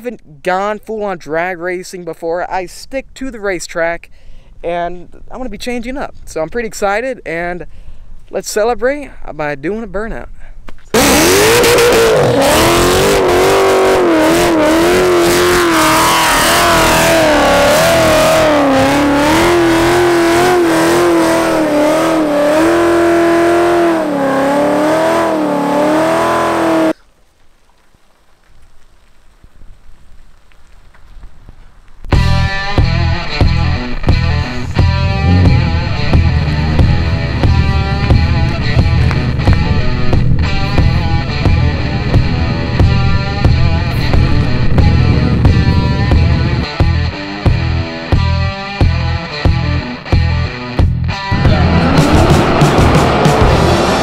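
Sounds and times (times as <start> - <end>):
loud guitar music: 11.0 - 26.9, 32.1 - 54.0
car engine revving: 11.0 - 27.0, 32.3 - 47.8, 51.1 - 54.0.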